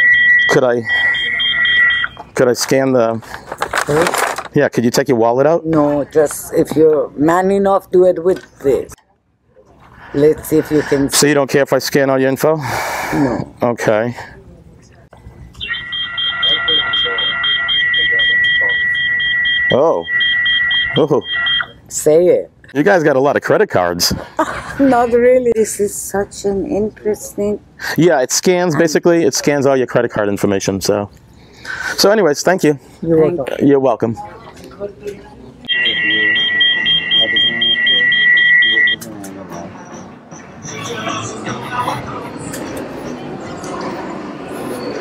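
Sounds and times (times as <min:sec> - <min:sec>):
steady high electronic tone: 0:00.0 - 0:02.2, 0:15.6 - 0:21.8, 0:35.7 - 0:42.5
rapid pulsing beeps: 0:00.0 - 0:02.3, 0:15.6 - 0:21.8, 0:35.7 - 0:43.2.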